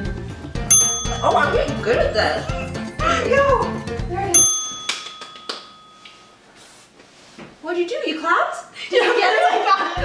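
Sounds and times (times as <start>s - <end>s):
bright bell-like ding: 0.7s - 1.8s, 4.3s - 6.4s.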